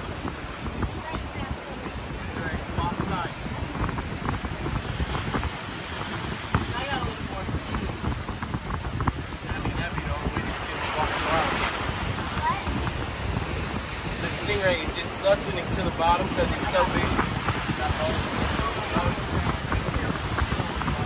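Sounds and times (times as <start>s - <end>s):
faint voices talking: 0.0s - 21.0s
surf breaking: 0.0s - 21.0s
wind buffeting microphone: 0.0s - 21.0s.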